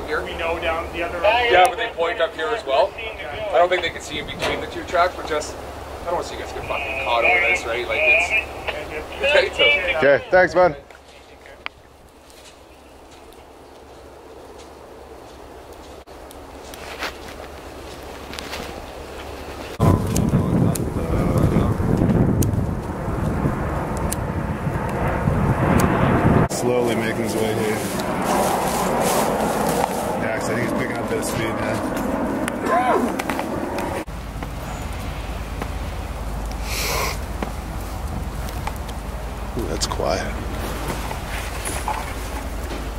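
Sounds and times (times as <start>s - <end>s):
muffled voices: 0.0s - 11.7s, 26.5s - 33.2s
wind rumble on microphone: 19.2s - 36.6s
microphone handling noise: 19.8s - 23.5s.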